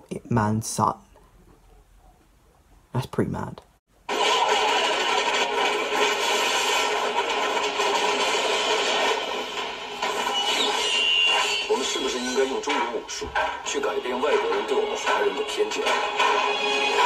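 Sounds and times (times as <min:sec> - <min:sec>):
film trailer soundtrack through laptop speaker: 0:03.9 - 0:17.0.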